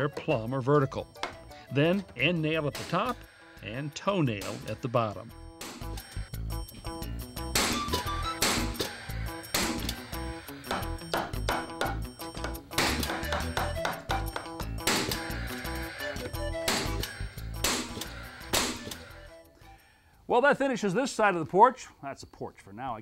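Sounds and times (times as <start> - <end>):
background music: 0.0 - 21.0
nail gun shots: 2.8 - 3.2, 4.4 - 4.8, 7.5 - 10.0, 12.7 - 13.6, 14.8 - 15.4, 16.6 - 19.0.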